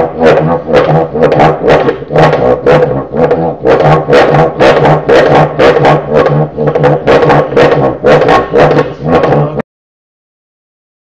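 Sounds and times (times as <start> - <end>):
friction drum low pulsing drone: 0.0 - 9.6.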